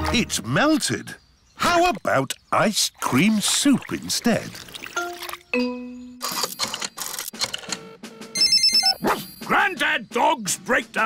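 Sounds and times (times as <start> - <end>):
trilling telephone ring: 8.4 - 9.0.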